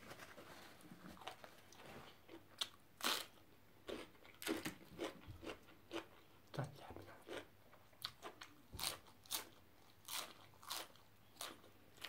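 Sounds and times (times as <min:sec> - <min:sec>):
person chewing crunchy food: 0:01.0 - 0:12.0.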